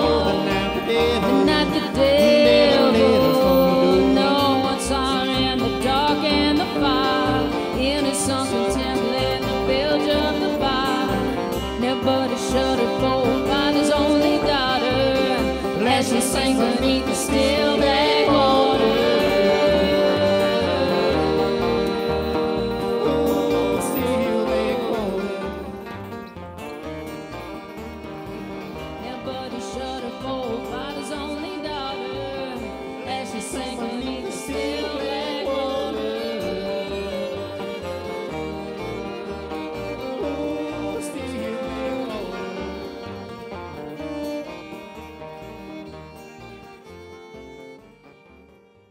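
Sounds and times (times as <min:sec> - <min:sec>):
acoustic guitar: 0:00.0 - 0:48.9
banjo: 0:00.0 - 0:48.9
fiddle: 0:00.0 - 0:48.9
upright bass: 0:00.0 - 0:48.9.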